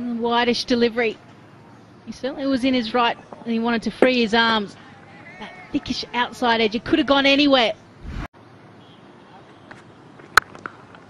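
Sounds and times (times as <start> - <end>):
low ground ambience: 8.0 - 8.3.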